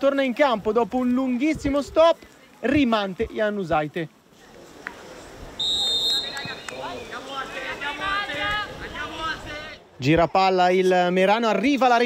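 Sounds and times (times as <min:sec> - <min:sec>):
referee whistle: 0:05.6 - 0:07.1.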